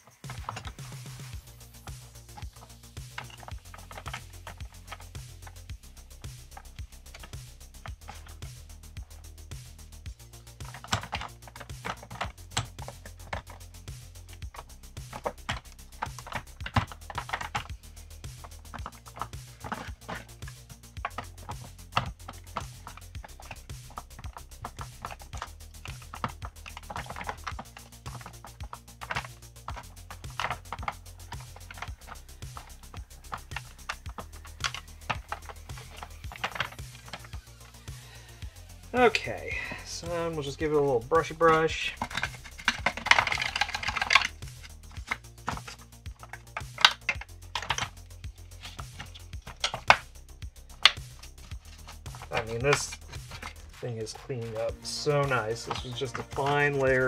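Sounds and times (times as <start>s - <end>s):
background music with bass: 0.0s - 57.0s.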